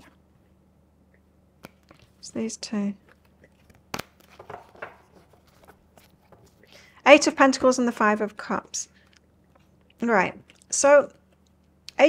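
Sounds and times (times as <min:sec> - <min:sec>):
cards rustling and clicking: 0:03.0 - 0:06.7.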